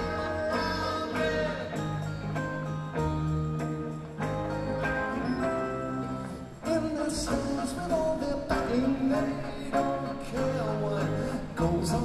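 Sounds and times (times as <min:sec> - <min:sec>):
man singing: 0:00.0 - 0:02.1, 0:06.6 - 0:12.0
electric guitar: 0:00.0 - 0:12.0
live rock band playing: 0:00.0 - 0:12.0.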